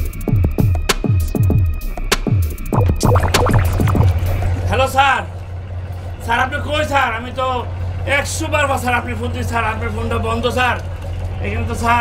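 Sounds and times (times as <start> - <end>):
steady low hum: 2.8 - 5.8.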